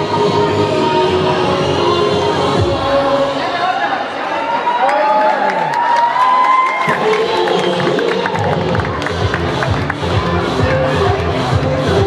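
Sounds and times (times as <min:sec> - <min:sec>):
crowd cheering and shouting: 0:02.6 - 0:12.0.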